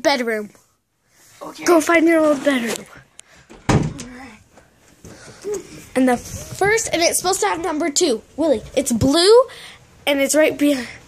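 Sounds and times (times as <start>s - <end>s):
loud thump: 3.5s - 4.2s.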